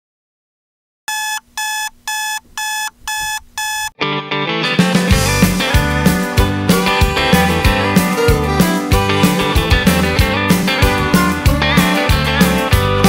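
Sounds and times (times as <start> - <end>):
alarm clock beeping: 1.1 - 4.0
country band song: 4.0 - 13.0
drums: 4.6 - 13.0.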